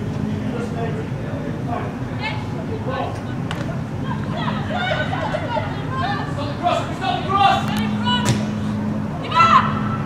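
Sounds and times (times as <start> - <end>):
low steady hum: 0.0 - 10.0
distant people shouting: 3.8 - 10.0.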